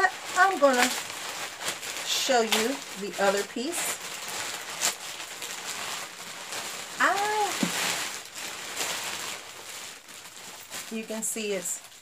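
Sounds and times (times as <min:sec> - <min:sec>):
plastic bag rustling and crinkling: 0:00.0 - 0:12.0.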